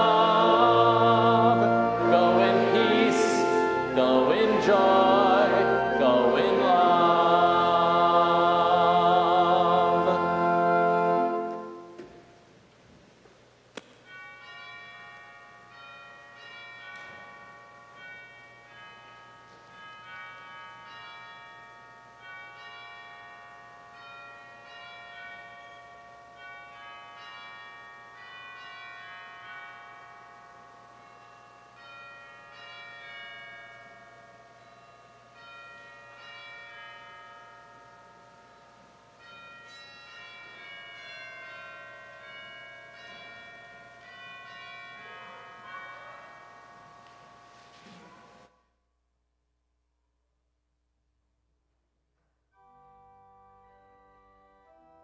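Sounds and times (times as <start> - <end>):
bells ringing a peal: 0.0 - 12.4, 14.0 - 48.5, 52.6 - 55.0.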